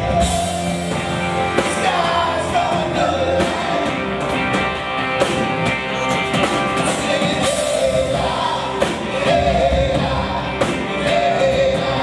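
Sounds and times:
man singing lead: 0.0s - 4.4s, 5.7s - 12.0s
live rock band playing: 0.0s - 12.0s.

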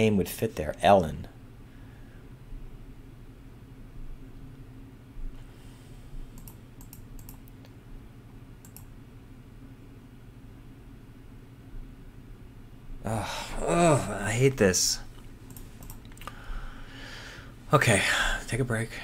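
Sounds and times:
low steady hum: 0.0s - 19.0s
keyboard and mouse clicks: 6.3s - 7.7s, 8.6s - 8.9s, 15.5s - 16.3s.

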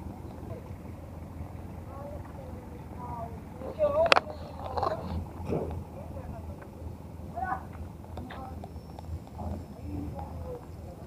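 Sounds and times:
people talking indistinctly: 0.0s - 11.0s
steady low rumble: 0.0s - 11.0s.

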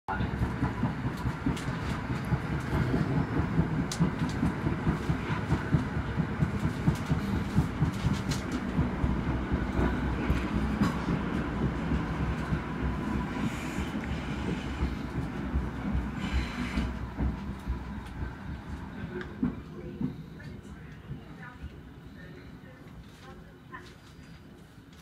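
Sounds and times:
electric train rumbling on rails: 0.1s - 25.0s
sharp clicks of train wheels: 0.3s - 21.2s.

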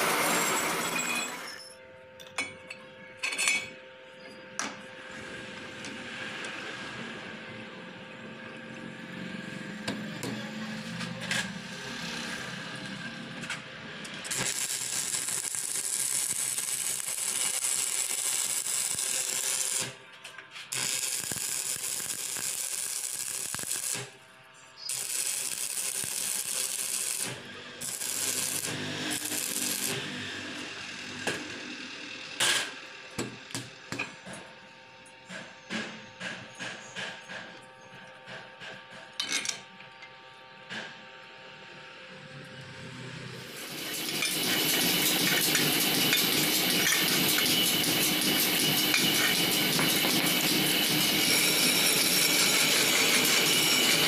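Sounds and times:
welding arc crackling and hissing: 14.1s - 20.0s, 20.7s - 24.2s, 24.8s - 31.2s, 43.4s - 54.0s.

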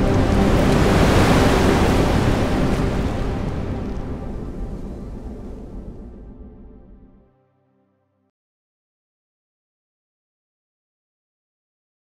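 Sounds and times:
wind-like whoosh: 0.0s - 7.2s
low dark synth drone: 0.0s - 8.1s.

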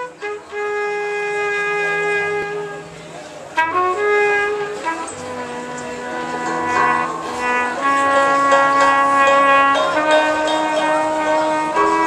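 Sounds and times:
trumpet holding long note: 0.0s - 12.0s.

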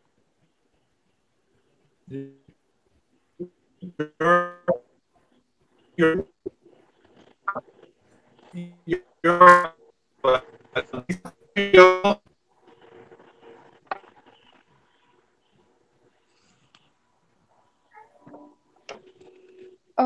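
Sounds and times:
distorted choppy speech: 6.0s - 7.8s, 8.4s - 12.2s.

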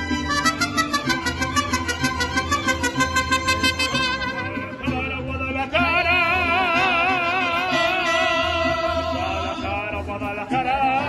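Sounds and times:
trumpet: 0.0s - 10.0s
strummed rhythm: 0.0s - 11.0s
violins: 0.0s - 11.0s.

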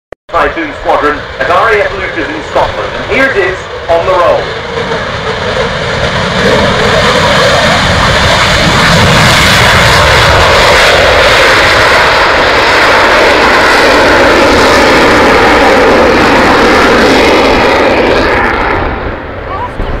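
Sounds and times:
jet engines at take-off power: 0.3s - 20.0s.

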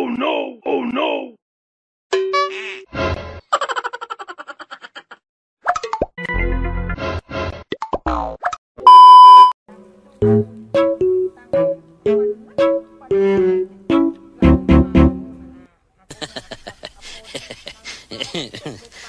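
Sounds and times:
loud steady beep: 8.9s - 9.6s
bouncy plucked tune: 10.2s - 15.7s.

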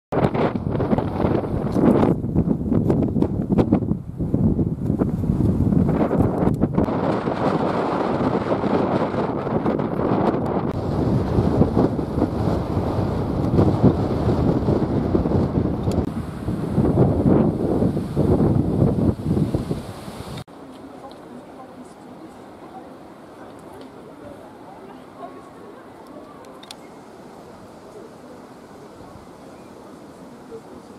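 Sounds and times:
wind buffeting microphone: 0.1s - 20.5s.

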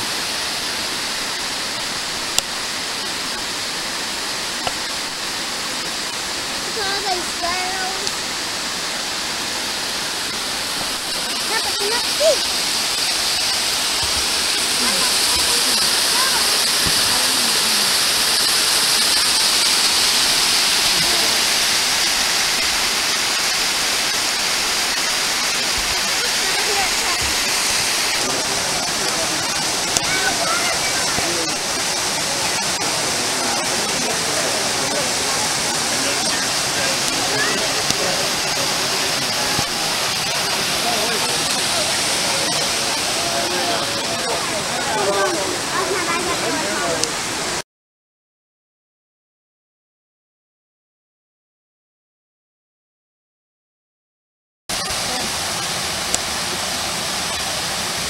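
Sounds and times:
waterfall rushing over rock: 0.0s - 47.6s, 54.7s - 58.0s.

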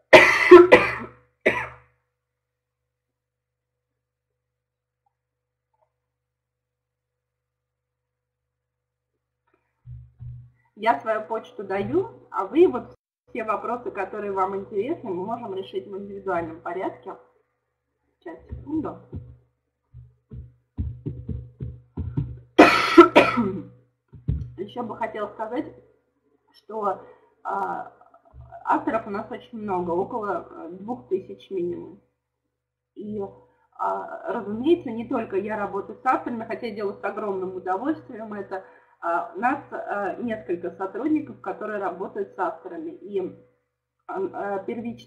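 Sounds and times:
woman coughing: 0.1s - 1.8s, 22.6s - 23.7s.

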